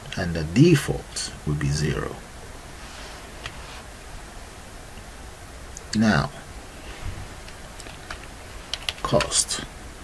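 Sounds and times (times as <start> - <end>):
computer keyboard typing: 7.8 - 9.4.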